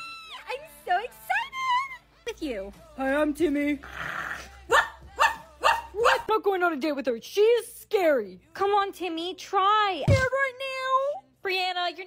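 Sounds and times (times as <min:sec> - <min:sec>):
small dog yapping: 0:04.7 - 0:06.3.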